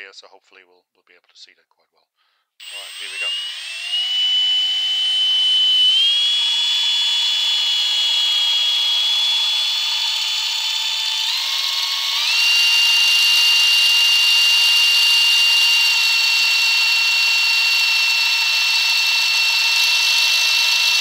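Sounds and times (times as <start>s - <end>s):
power drill motor whine: 2.6s - 21.0s.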